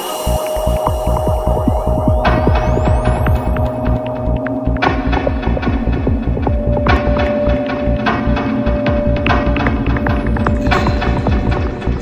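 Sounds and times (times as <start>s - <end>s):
trance music with pulsing bassline: 0.0s - 12.0s.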